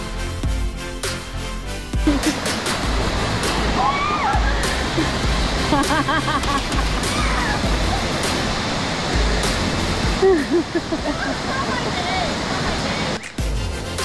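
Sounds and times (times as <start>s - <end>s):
electronic beat music: 0.0s - 3.7s, 4.4s - 10.5s
waterfall roaring: 2.0s - 14.0s.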